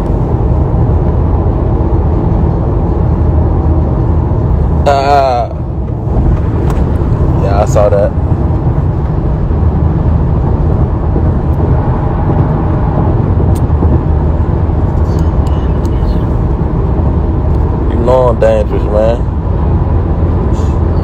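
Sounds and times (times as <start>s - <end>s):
car cabin road and engine rumble: 0.0s - 21.0s.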